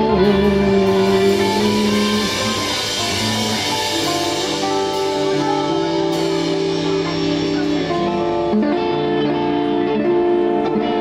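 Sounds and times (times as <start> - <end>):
soul band playing live: 0.0 - 11.0.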